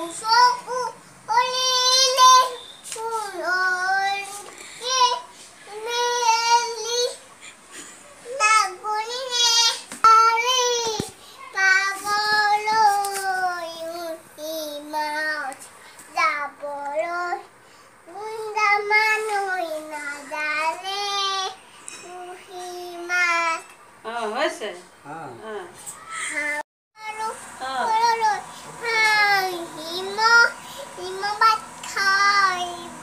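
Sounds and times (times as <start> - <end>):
child singing unaccompanied: 0.0 - 7.2, 8.2 - 23.8, 26.3 - 33.0.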